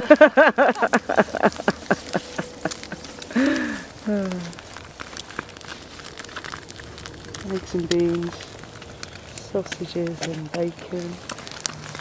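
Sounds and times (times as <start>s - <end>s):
person laughing: 0.0s - 4.5s
tent fabric crinkling and rustling: 0.0s - 12.0s
person sighing: 1.6s - 4.6s.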